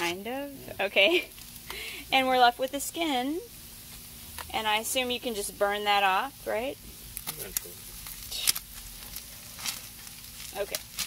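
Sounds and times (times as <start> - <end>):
fish sizzling on grill: 0.0 - 11.0
sharp crackles and clicks: 1.1 - 11.0.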